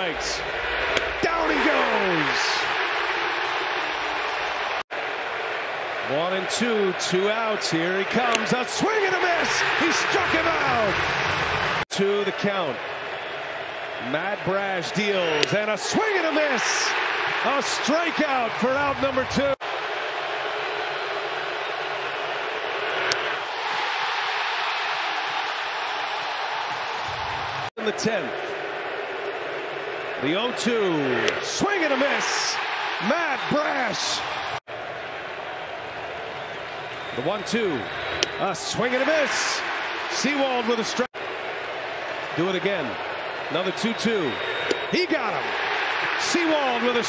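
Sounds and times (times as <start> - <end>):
stadium crowd cheering: 0.0 - 47.0.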